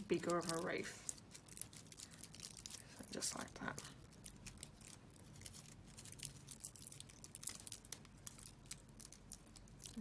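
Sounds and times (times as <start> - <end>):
artificial greenery rustling and crackling: 0.0 - 10.0.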